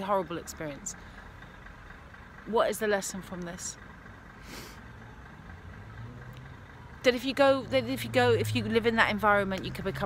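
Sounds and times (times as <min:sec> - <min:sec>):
low motor rumble: 0:00.0 - 0:10.0.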